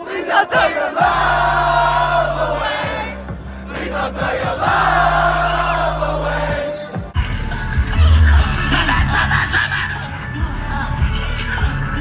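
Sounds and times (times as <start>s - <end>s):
crowd singing and shouting: 0.0s - 12.0s
loud hip-hop music: 0.0s - 12.0s
deep bass notes: 1.0s - 12.0s.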